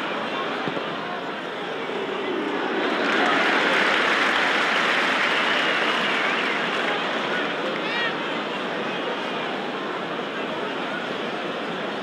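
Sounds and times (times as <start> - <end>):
stadium crowd voices: 0.0 - 12.0.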